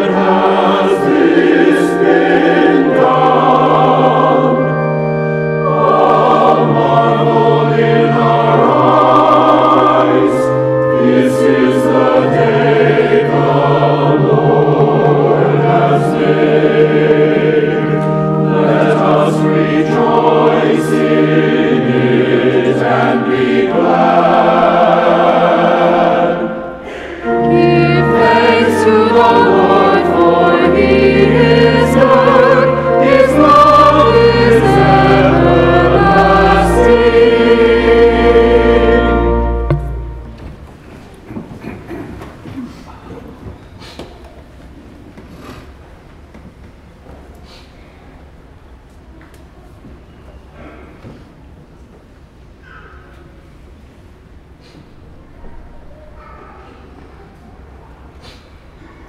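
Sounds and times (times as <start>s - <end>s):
choir singing: 0.0s - 40.5s.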